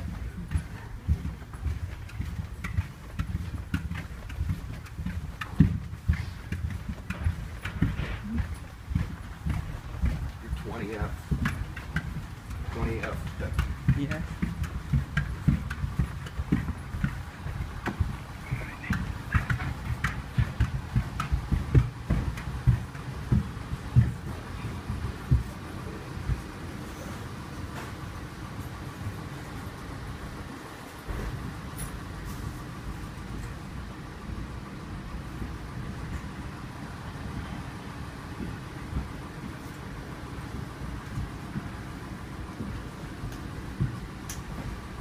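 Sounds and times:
footsteps on a floor: 0.0 - 29.7, 38.2 - 45.0.

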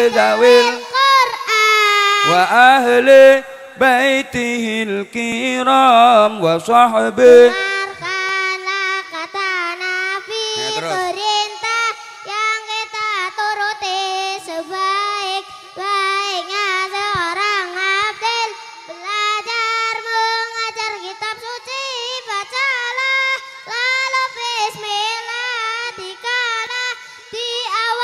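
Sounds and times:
boy chanting a melody: 0.0 - 28.0.

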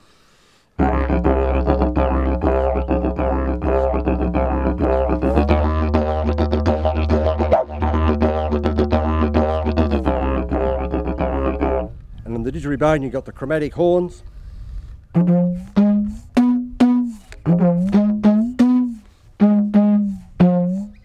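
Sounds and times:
slide didgeridoo drone: 0.8 - 12.0, 15.1 - 21.0.

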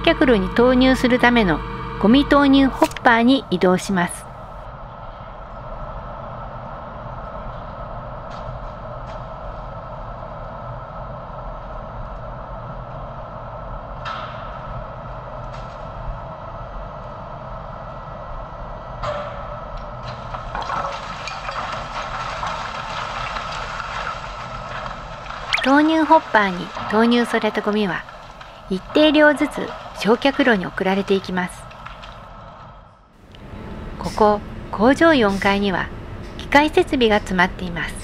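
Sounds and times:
mechanical hum of crane: 0.0 - 38.0
garbage bags rushing into hopper: 20.2 - 32.2.

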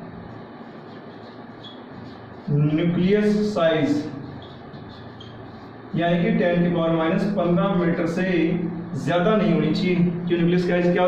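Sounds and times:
marker scratching on whiteboard: 0.2 - 6.4
marker squeak: 0.6 - 2.6, 3.8 - 5.9.

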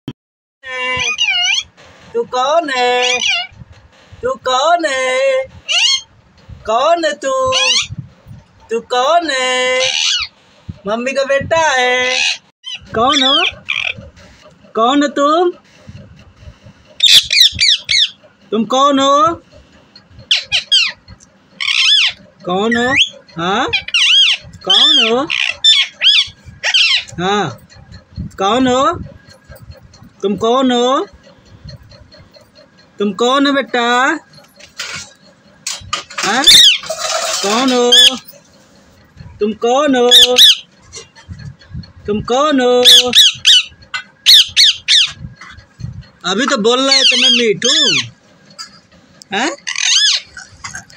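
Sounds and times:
parakeet high-pitched calls: 0.7 - 1.8, 2.8 - 3.6, 5.6 - 6.1, 7.5 - 7.9, 9.5 - 10.4, 12.0 - 14.1, 17.0 - 18.2, 20.3 - 27.1, 36.3 - 38.3, 40.0 - 41.2, 42.8 - 45.6, 46.4 - 48.9, 49.6 - 50.8.

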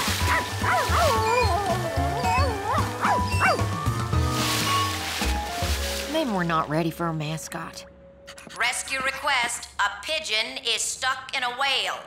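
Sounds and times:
cartoon background music: 0.0 - 10.1
small dog yipping and barking: 0.3 - 3.7.

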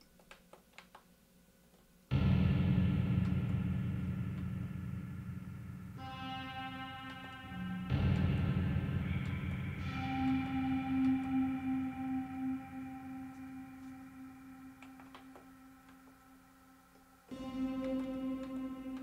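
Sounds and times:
deep synth chords: 2.1 - 19.0
higher held synth tone: 6.0 - 19.0.

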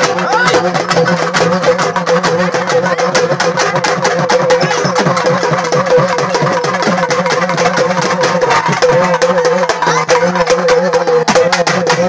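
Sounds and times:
loud rapid drumming: 0.0 - 12.0.

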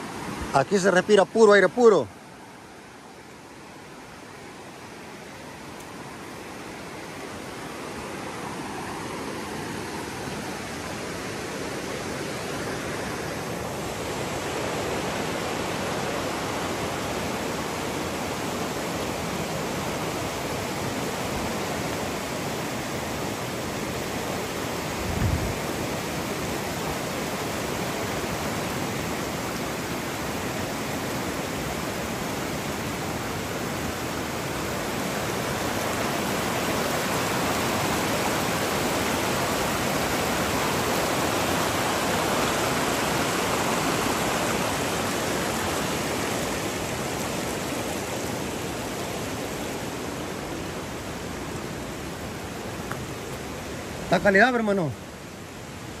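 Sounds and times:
river rushing over rocks: 0.0 - 56.0.

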